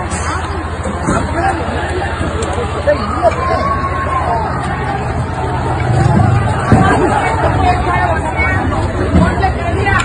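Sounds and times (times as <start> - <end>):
crowd shouting: 1.2 - 10.0.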